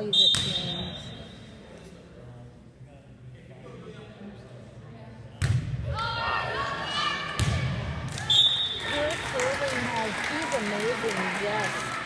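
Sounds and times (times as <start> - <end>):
volleyball being hit: 7.4 - 8.2.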